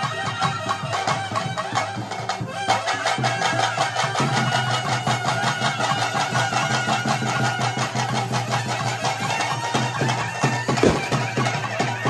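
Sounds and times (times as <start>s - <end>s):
double-reed pipe: 0.0s - 12.0s
fast drumbeats: 0.0s - 12.0s.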